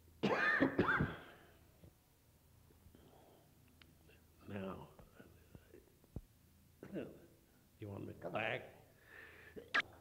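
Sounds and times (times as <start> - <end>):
old man coughing: 0.2 - 1.4.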